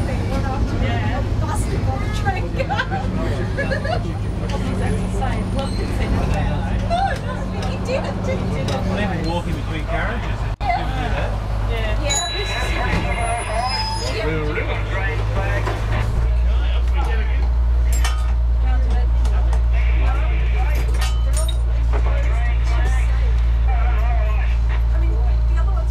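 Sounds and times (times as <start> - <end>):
people talking: 0.0 - 25.9
rail car rumbling: 0.0 - 25.9.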